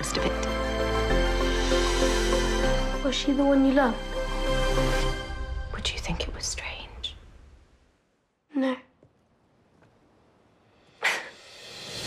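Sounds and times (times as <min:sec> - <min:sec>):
background music: 0:00.0 - 0:06.8
woman whispering: 0:05.8 - 0:07.2, 0:08.5 - 0:08.9.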